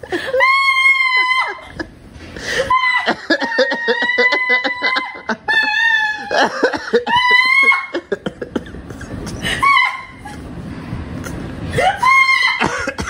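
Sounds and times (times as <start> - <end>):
woman shrieking with laughter: 0.0 - 1.9, 2.5 - 8.3, 9.3 - 10.4, 11.7 - 13.0.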